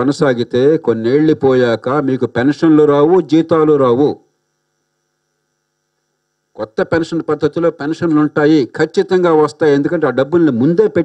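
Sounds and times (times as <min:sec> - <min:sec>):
faint electrical hum: 0:00.0 - 0:11.0
man's voice: 0:06.6 - 0:11.0.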